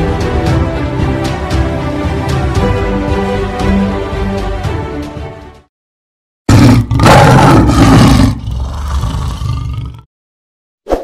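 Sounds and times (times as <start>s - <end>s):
lion roaring: 6.5s - 10.1s.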